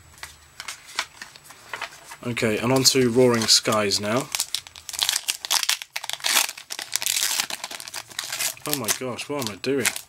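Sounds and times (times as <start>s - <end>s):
foil wrapper crinkling: 0.2s - 10.0s.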